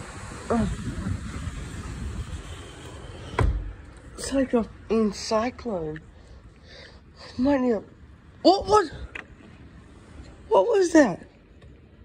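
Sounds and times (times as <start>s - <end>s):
heavy rain pouring: 0.0s - 2.8s.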